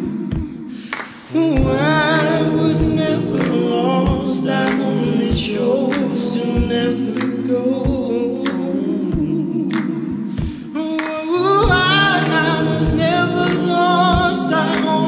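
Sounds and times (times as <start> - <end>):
voices singing in harmony: 0.0 - 15.0
sharp percussive hits: 0.2 - 15.0.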